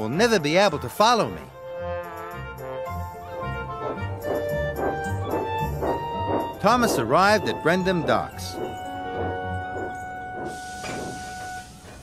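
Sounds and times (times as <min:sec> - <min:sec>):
background music: 0:00.0 - 0:11.7
steam locomotive hissing: 0:03.1 - 0:12.0.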